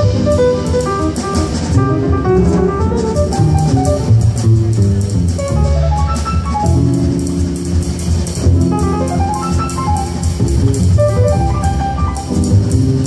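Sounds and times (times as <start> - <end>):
drum kit with cymbals: 0.0 - 13.0
grand piano: 0.0 - 13.0
plucked upright bass: 0.0 - 13.0.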